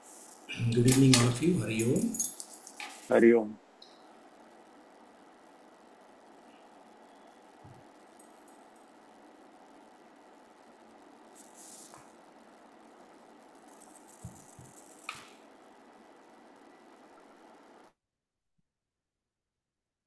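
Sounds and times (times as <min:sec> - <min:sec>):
faint microphone hiss: 0:00.0 - 0:17.9
soft rustles and clicks: 0:11.3 - 0:12.3, 0:13.5 - 0:15.4.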